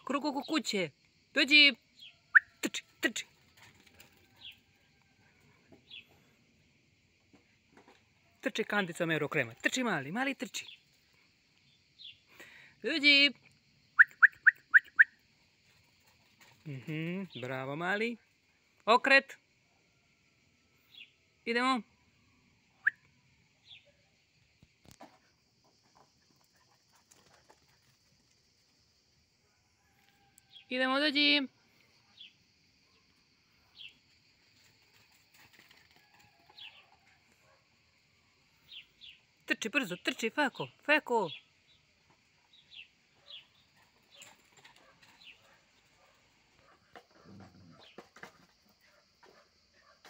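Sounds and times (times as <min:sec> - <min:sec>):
insects buzzing: 0:00.0 - 0:50.0.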